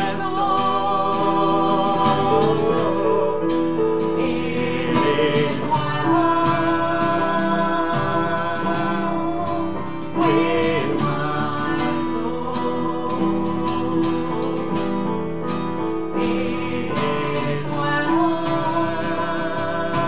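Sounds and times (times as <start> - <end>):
woman and man singing: 0.0 - 15.0, 16.2 - 20.0
digital piano: 0.0 - 20.0
strummed acoustic guitar: 0.0 - 20.0.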